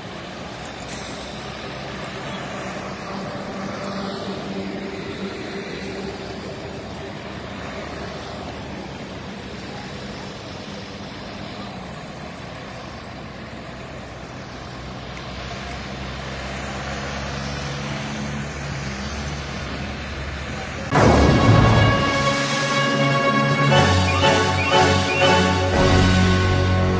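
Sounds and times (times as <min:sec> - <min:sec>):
vehicles driving past on highway: 0:00.0 - 0:26.9.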